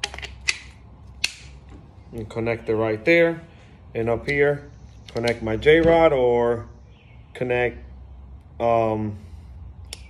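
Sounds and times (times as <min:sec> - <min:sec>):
hose coupler snapping clicks: 0:00.0 - 0:01.6, 0:04.2 - 0:06.0.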